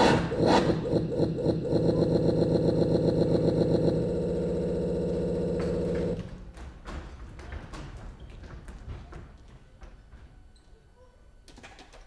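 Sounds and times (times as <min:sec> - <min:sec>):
loud electronic buzz: 0:00.0 - 0:06.3.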